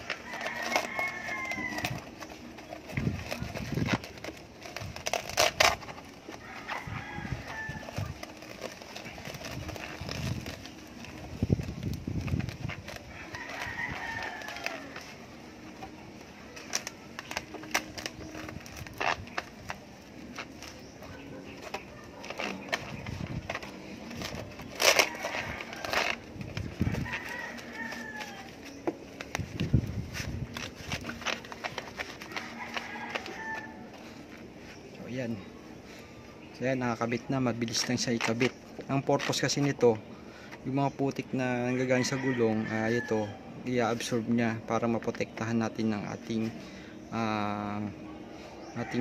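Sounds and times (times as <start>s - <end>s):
rooster crowing: 0.0s - 2.1s, 6.4s - 8.1s, 13.1s - 15.1s, 24.8s - 28.8s, 32.0s - 34.2s, 41.7s - 43.5s.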